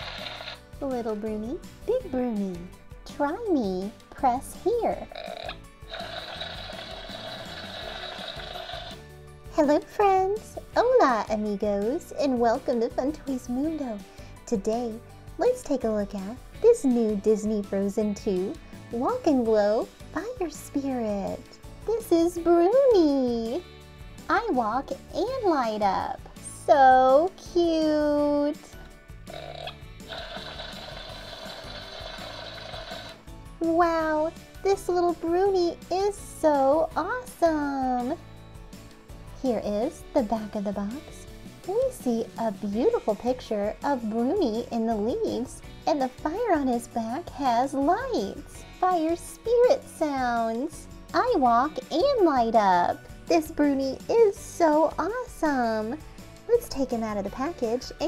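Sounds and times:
toy electronic sound effects: 0.0 - 0.6, 5.3 - 9.0, 29.4 - 33.2
background music: 0.0 - 58.0.

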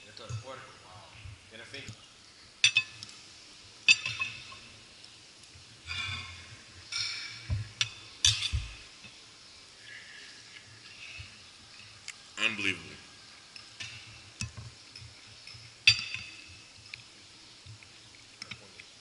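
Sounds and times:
cutlery clinking on a plate: 3.9 - 4.6, 6.9 - 8.8, 13.6 - 16.5.

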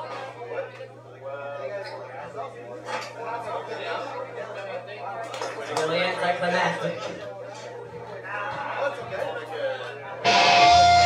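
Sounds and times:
low crowd chatter: 0.0 - 11.0
electric guitar and bass ringing note: 10.3 - 11.0.

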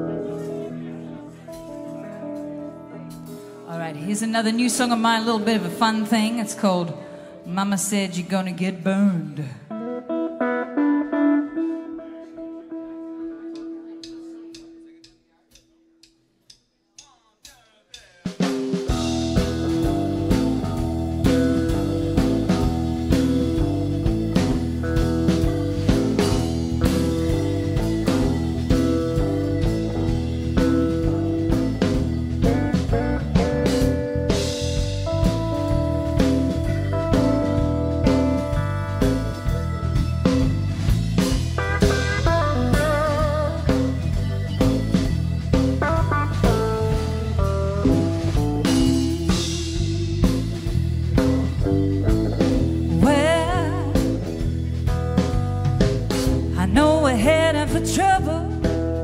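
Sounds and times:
blues band playing: 0.0 - 59.0.

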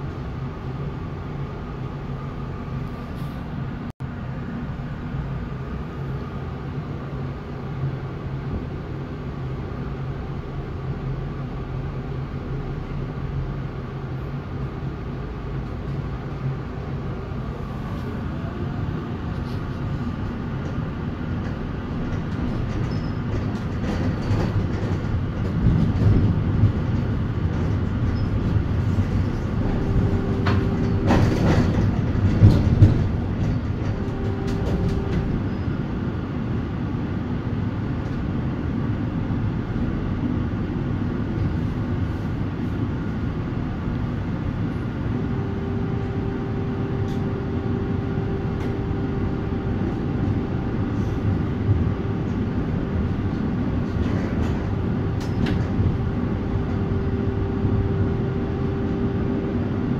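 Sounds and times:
tram clatter: 0.0 - 59.9
tram wheels rumbling on rails: 0.0 - 59.9
steady whine: 13.0 - 59.9.

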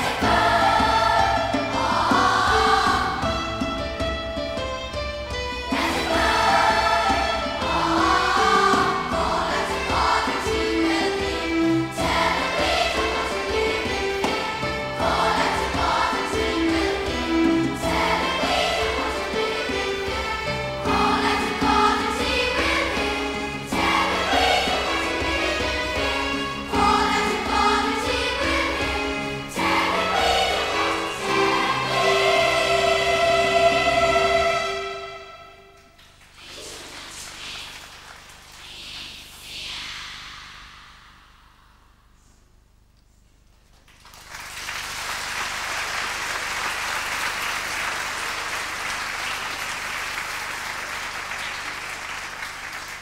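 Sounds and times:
choir of young voices singing: 0.0 - 3.5, 5.7 - 35.6.

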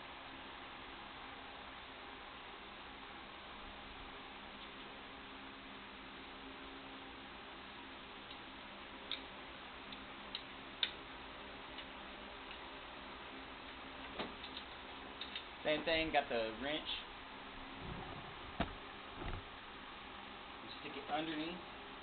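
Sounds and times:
low background hum: 0.0 - 22.0.

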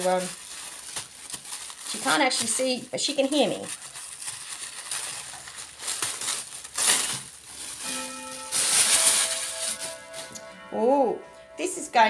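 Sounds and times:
tissue paper and plastic rustling: 0.0 - 10.6
clock chime: 7.8 - 12.0.

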